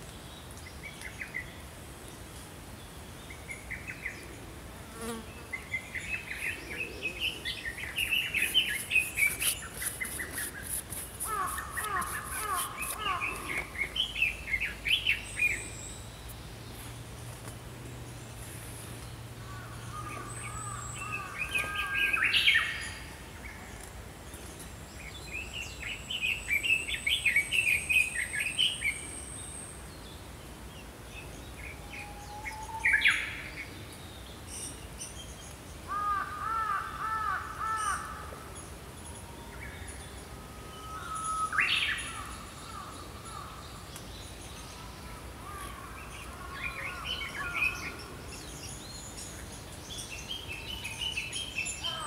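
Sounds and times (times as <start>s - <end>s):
songbirds singing and chirping: 0.0s - 52.0s.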